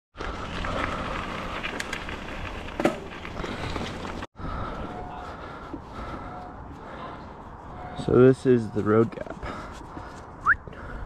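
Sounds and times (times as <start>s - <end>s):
bike tyres rolling on dirt: 0.2s - 11.0s.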